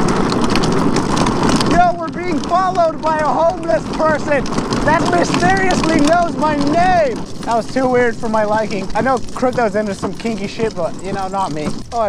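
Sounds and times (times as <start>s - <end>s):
rattling ticks from frame: 0.0s - 12.0s
wheels rolling rumble on pavement: 0.0s - 12.0s
person speaking: 1.6s - 12.0s.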